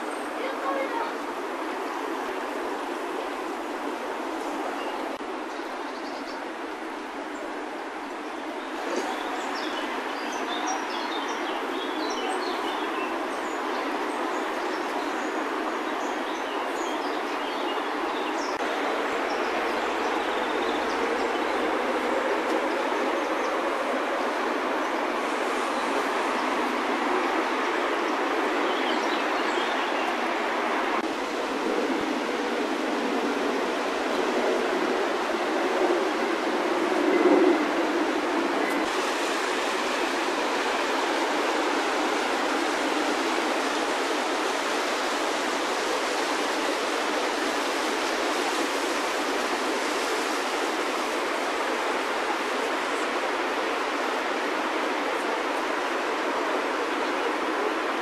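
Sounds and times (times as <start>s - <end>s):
fast-flowing river rushing: 0.0s - 58.0s.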